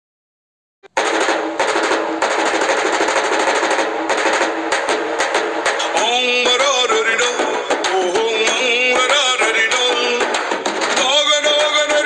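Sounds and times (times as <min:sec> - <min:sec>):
fast drum roll: 0:00.9 - 0:12.0.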